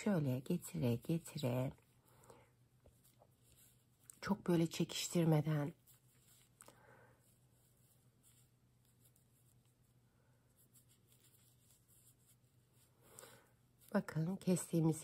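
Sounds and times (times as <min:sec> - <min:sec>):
low steady hum: 0:00.0 - 0:15.0
rustling of knitted fabric: 0:00.0 - 0:15.0.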